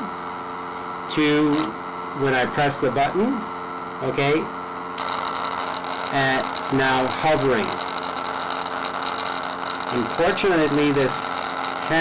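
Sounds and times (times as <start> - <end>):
buzzing hum of magnet vibrating: 0.0 - 12.0
motor-driven rotary switch running: 0.7 - 2.5, 4.2 - 12.0.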